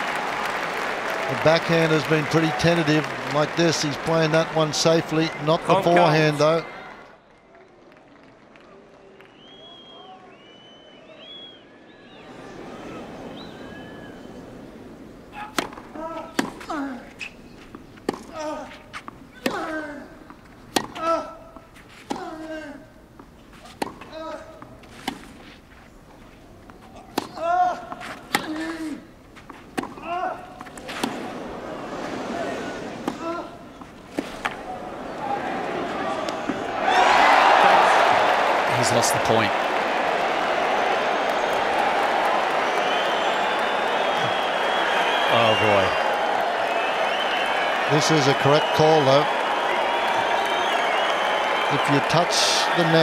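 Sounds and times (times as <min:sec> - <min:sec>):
crowd murmuring: 0:12.3 - 0:13.7, 0:30.4 - 0:39.6
racket striking tennis ball: 0:15.4 - 0:17.4, 0:18.0 - 0:19.8, 0:20.7 - 0:22.4, 0:23.6 - 0:25.5, 0:26.8 - 0:31.4, 0:33.0 - 0:34.6.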